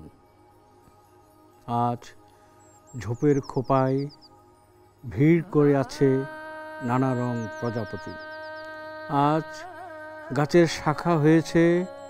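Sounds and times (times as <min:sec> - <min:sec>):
soft drone background music: 0:00.0 - 0:12.0
person speaking: 0:05.1 - 0:08.3, 0:09.0 - 0:11.9.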